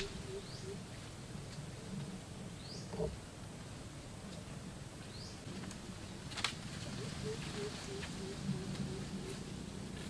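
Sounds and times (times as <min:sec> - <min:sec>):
bird chirp: 0:00.0 - 0:00.9, 0:02.5 - 0:03.2, 0:05.0 - 0:05.4
faint outdoor background: 0:00.0 - 0:10.0.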